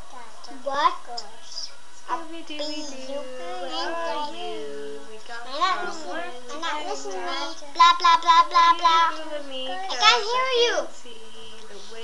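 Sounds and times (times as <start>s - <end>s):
child singing wordless tune: 0.0s - 11.0s.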